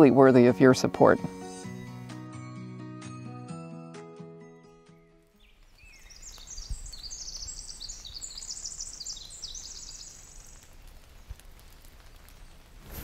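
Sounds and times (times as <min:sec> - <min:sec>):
faint outdoor background: 0:00.0 - 0:13.0
songbird chirping: 0:05.2 - 0:11.4.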